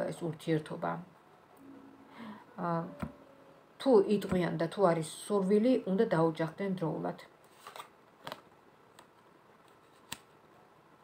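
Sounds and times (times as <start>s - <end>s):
cards being shuffled: 7.4s - 8.4s, 9.0s - 10.3s.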